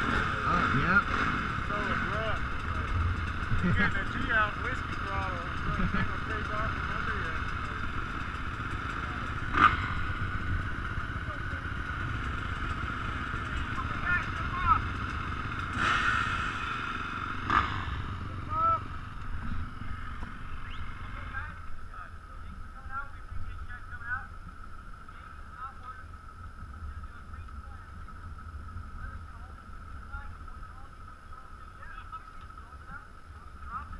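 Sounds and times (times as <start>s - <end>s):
dirt bikes idling: 0.0s - 33.9s.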